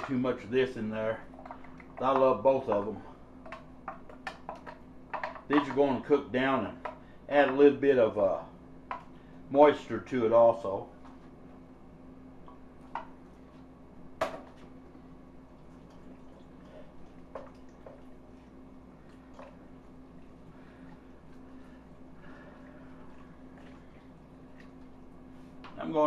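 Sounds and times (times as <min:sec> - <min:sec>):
faint steady hum: 0:00.0 - 0:26.0
wet squishing of stirred food: 0:15.4 - 0:25.8.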